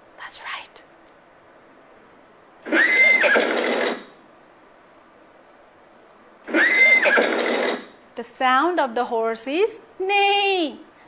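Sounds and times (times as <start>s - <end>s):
recorded horse whinny: 2.6s - 4.2s, 6.5s - 8.0s.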